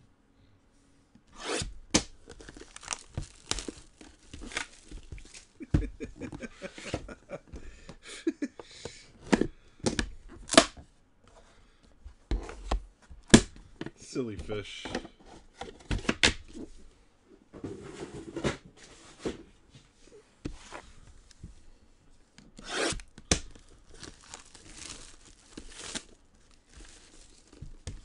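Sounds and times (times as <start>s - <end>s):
cardboard ripping and scraping: 1.4s - 7.1s, 22.6s - 28.0s
crinkling: 2.0s - 7.6s, 22.9s - 28.0s.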